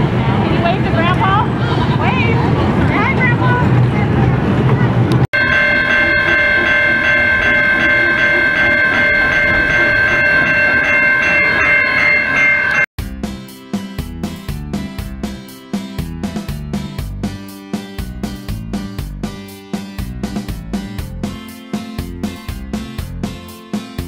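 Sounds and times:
whistle-like train ride chord: 0:05.4 - 0:12.9
music: 0:13.0 - 0:24.0.

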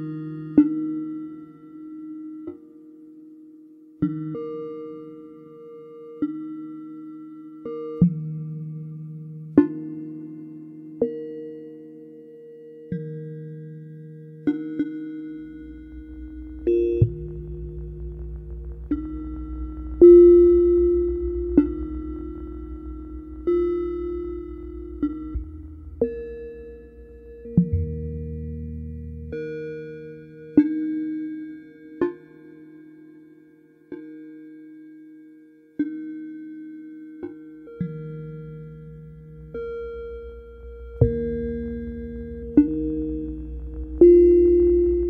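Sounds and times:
ambient electronic drone music: 0:12.9 - 0:45.0
bell-like synth tones: 0:14.6 - 0:28.5, 0:39.6 - 0:45.0.

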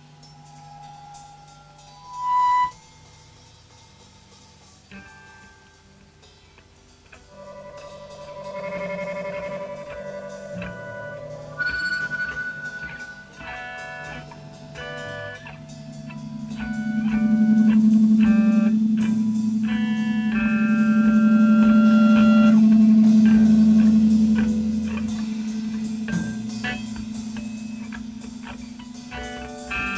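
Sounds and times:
electric guitar picked notes: 0:04.9 - 0:29.9
sustained low guitar note: 0:07.3 - 0:29.9.

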